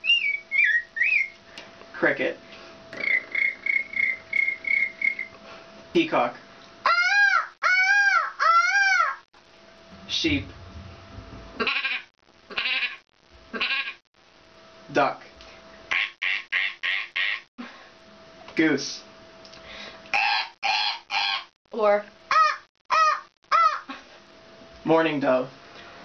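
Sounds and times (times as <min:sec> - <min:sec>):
woman imitating peacock calls: 0:20.2 - 0:21.5, 0:22.3 - 0:24.0.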